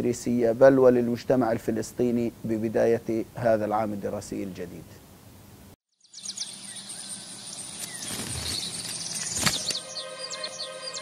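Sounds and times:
steady outdoor hiss: 0:00.0 - 0:11.0
birds chirping: 0:05.9 - 0:11.0
sustained music chords: 0:09.7 - 0:11.0.

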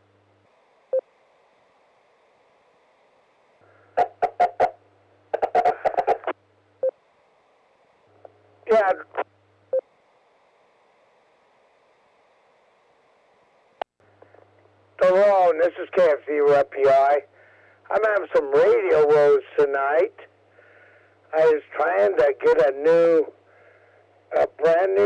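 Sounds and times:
radio carrier hiss: 0:00.0 - 0:25.0
man's voice over radio: 0:08.7 - 0:09.2, 0:15.0 - 0:17.3, 0:17.9 - 0:20.2, 0:21.3 - 0:23.3, 0:24.3 - 0:25.0.

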